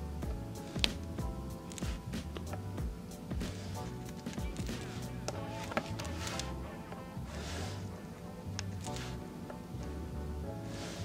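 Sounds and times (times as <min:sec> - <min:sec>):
background music with held tones: 0:00.0 - 0:11.0.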